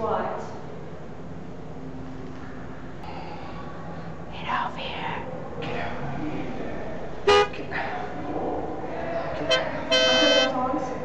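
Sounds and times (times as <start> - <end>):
car horn toot: 7.3 - 7.6, 9.4 - 10.6.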